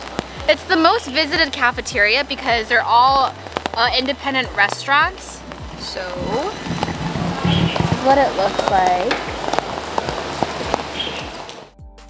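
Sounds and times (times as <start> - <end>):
steady rain falling: 0.0 - 11.8
background music with a beat: 0.0 - 12.0
sharp drop hits: 5.4 - 9.4.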